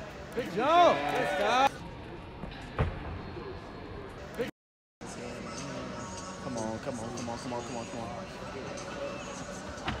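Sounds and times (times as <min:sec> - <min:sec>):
indoor arena background noise: 0:00.0 - 0:10.0.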